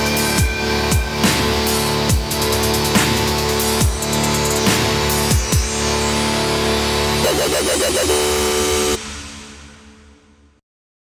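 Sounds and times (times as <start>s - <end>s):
dubstep synth and bass chord: 0.0s - 10.2s.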